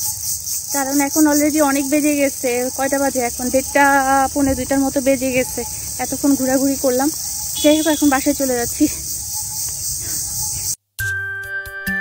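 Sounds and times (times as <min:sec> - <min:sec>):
high-pitched insect chorus: 0:00.0 - 0:10.8
woman speaking: 0:00.7 - 0:09.1.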